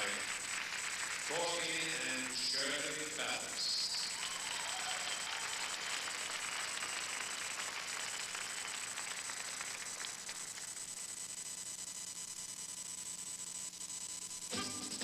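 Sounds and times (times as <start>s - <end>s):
audience applauding: 0.0s - 10.8s
person speaking: 1.3s - 4.0s.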